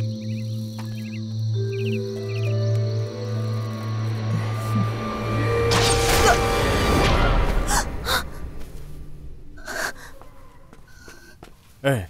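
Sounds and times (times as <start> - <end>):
background music: 0.0 - 11.1.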